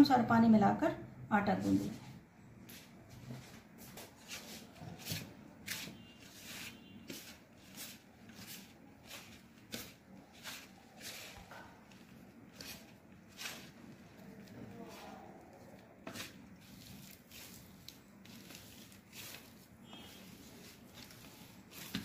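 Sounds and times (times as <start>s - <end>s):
hands scrunching dough: 4.2s - 22.0s.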